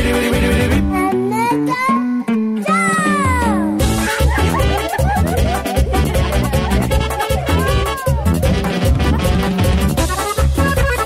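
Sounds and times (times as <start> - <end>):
band playing with heavy low beat: 0.0 - 1.0, 3.0 - 11.0
drum strokes: 3.8 - 10.7.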